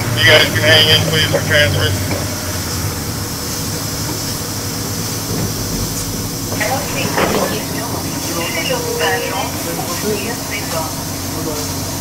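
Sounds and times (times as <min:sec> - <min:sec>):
bus engine hum: 0:00.0 - 0:12.0
tyres hissing on wet pavement: 0:00.0 - 0:12.0.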